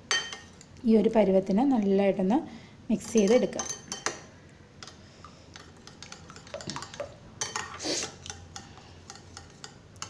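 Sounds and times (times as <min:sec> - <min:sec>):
spoon clinking against glass: 0:00.1 - 0:00.6, 0:03.2 - 0:04.2
spoon stirring thick mixture: 0:04.8 - 0:10.0.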